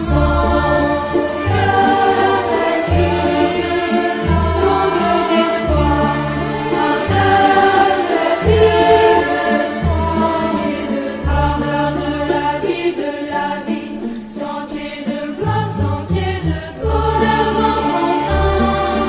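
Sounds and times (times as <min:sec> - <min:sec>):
children's choir singing: 0:00.0 - 0:19.0
orchestral accompaniment: 0:00.0 - 0:19.0.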